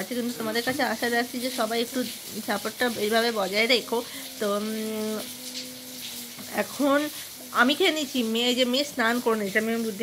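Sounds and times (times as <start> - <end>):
woman speaking: 0.0 - 5.4, 6.4 - 10.0.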